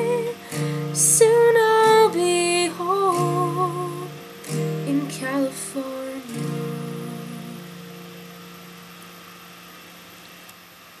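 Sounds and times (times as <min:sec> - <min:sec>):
acoustic guitar chord ringing: 0:00.0 - 0:10.4.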